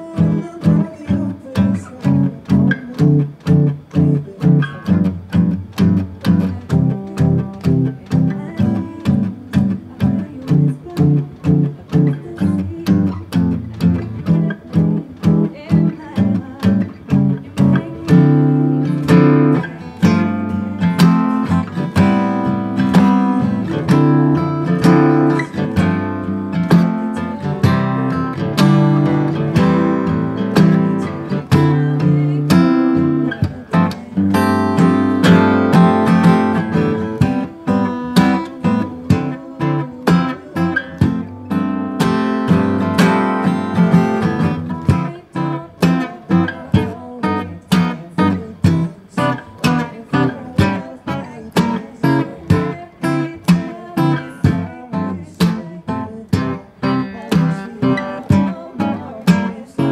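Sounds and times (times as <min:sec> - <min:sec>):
acoustic guitar playing: 0:00.0 - 0:59.9.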